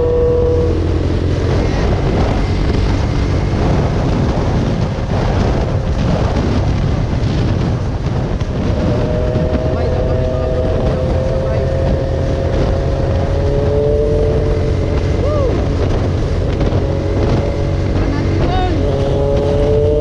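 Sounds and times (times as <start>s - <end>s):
motorcycle engine cruising: 0.0s - 20.0s
wind rush on microphone: 0.0s - 20.0s.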